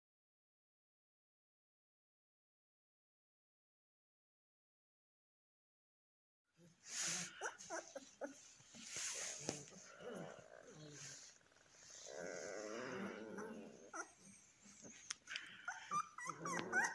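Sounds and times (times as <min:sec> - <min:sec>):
puppies crying: 0:07.0 - 0:10.4, 0:12.2 - 0:16.9.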